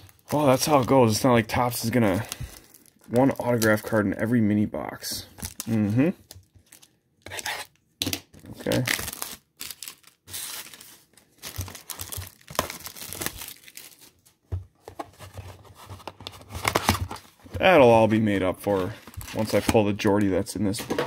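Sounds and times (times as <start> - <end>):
plastic wrap tearing and crinkling: 0.0 - 4.0, 5.4 - 7.7, 8.6 - 14.3.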